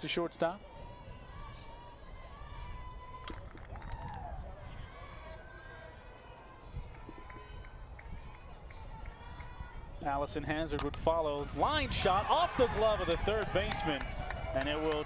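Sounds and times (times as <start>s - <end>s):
distant voices of players and spectators: 0.0s - 15.0s.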